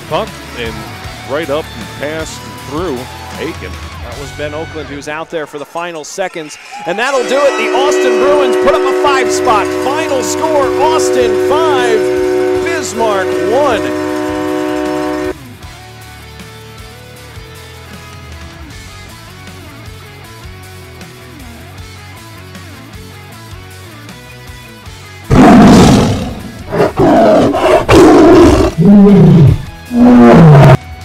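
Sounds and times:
loud held music chord: 6.9 - 15.4, 25.3 - 30.8
animal roar sound effect: 25.3 - 30.8.

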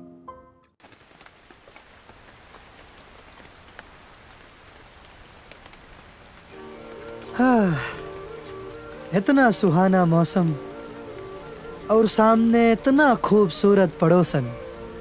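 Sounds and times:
music: 0.0 - 0.8, 6.5 - 15.0
rain falling on street: 0.8 - 15.0
man calling out: 7.4 - 8.0, 11.9 - 14.6.

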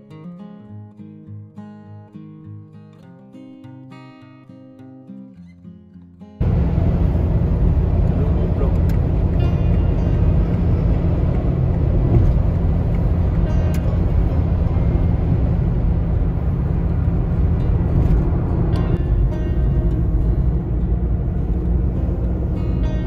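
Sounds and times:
car road rumble from inside cabin: 6.4 - 23.0
tyre and engine noise: 6.4 - 23.0.

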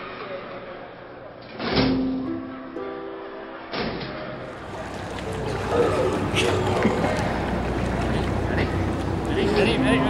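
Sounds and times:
film score chords: 4.4 - 10.0.

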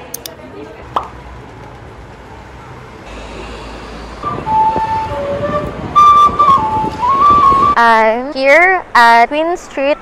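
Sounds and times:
city traffic hum: 0.0 - 10.0
wooden flute melody: 4.2 - 7.8.

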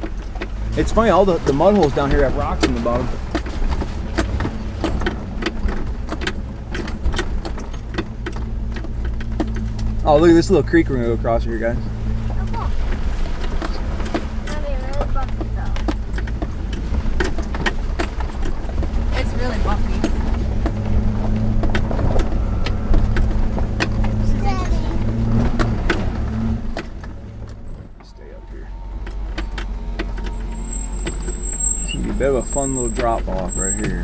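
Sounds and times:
engine droning at a crawl: 0.0 - 34.0
truck knocks and rattles: 0.0 - 34.0.

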